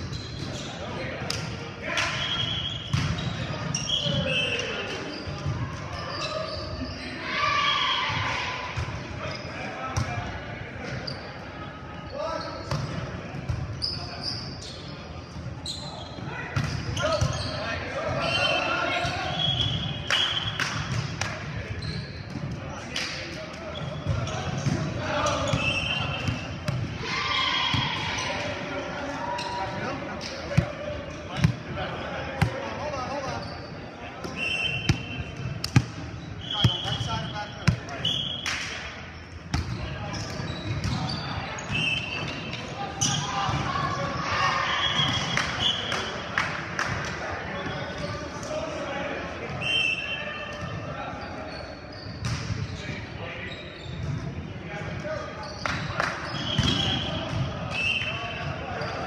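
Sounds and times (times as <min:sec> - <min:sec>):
sneakers squeaking on floor: 0:00.0 - 0:01.2, 0:02.2 - 0:07.3, 0:08.8 - 0:10.2, 0:10.8 - 0:11.4, 0:12.0 - 0:22.7, 0:23.6 - 0:31.7, 0:32.4 - 0:38.5, 0:39.1 - 0:46.2, 0:47.6 - 0:48.3, 0:49.4 - 0:59.0
hands slapping volleyball: 0:20.1 - 0:21.4, 0:35.6 - 0:35.9
players shouting: 0:25.0 - 0:32.8.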